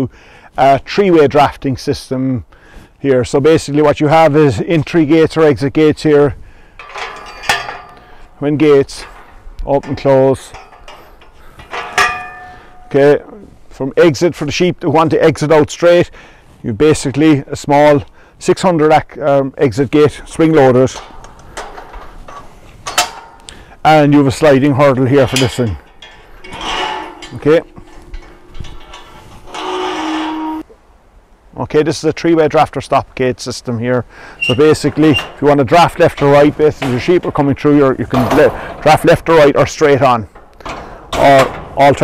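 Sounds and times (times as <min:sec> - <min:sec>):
metal gate clanging shut: 0:06.8 - 0:13.2, 0:20.1 - 0:30.8, 0:34.4 - 0:42.0.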